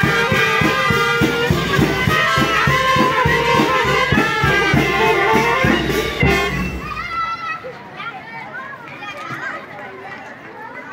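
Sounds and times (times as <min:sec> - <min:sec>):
children calling and talking: 0:00.0 - 0:10.9
outdoor crowd chatter: 0:00.0 - 0:10.9.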